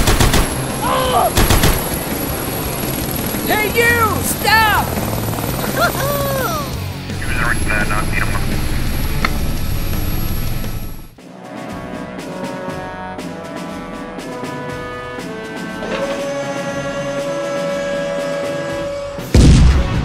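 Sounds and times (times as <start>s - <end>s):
sharp shots: 0.0s - 2.0s
toy helicopter rotor hum: 1.9s - 6.8s
short rising and falling cries: 4.0s - 6.8s.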